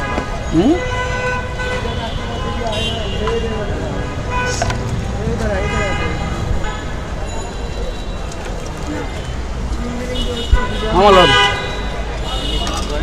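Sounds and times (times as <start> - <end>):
car horns: 0.0 - 8.4, 9.0 - 13.0
traffic rumble: 0.0 - 13.0
people talking: 1.7 - 13.0.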